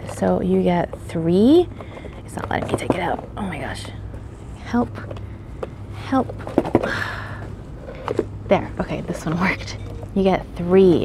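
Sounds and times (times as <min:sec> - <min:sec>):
woman speaking: 0:00.0 - 0:01.7, 0:02.3 - 0:04.0, 0:04.6 - 0:05.1, 0:06.0 - 0:07.1, 0:08.5 - 0:11.0
steady low store hum: 0:00.0 - 0:11.0
paper containers clicking and rustling: 0:01.8 - 0:03.4.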